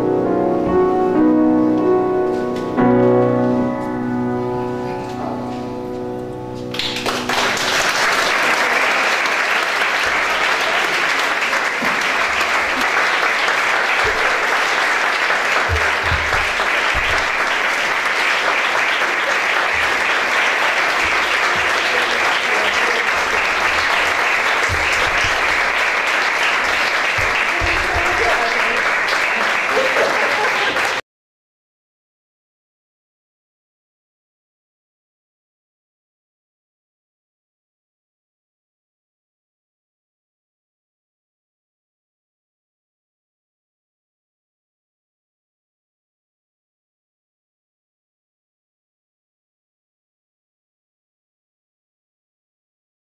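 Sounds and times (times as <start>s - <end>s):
grand piano chord: 0.0s - 8.4s, 13.1s - 29.7s
audience applauding: 6.7s - 31.0s.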